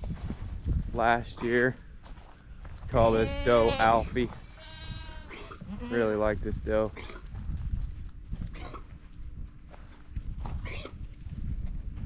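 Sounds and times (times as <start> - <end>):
steady low rumble: 0.0 - 12.0
goats bleating: 3.0 - 6.2.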